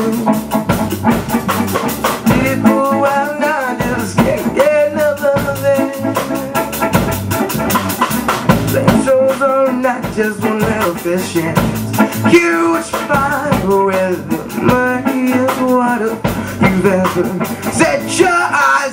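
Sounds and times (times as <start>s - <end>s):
rock band playing: 0.0s - 18.9s
steady drum beat: 0.0s - 18.9s.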